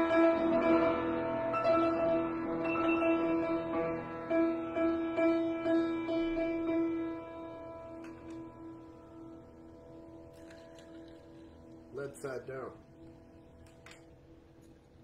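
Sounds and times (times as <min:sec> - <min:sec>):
piano chord struck repeatedly: 0:00.0 - 0:15.0.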